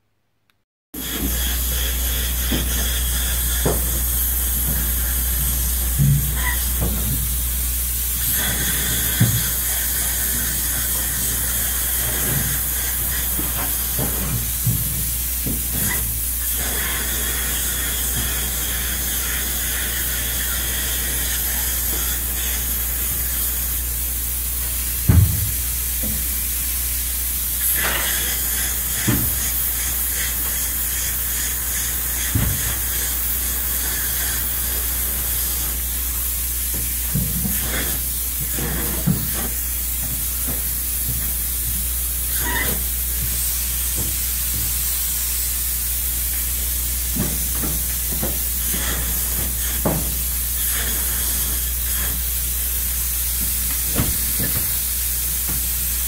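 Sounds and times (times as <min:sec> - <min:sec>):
spray foam gun hissing: 0:01.0 - 0:56.0.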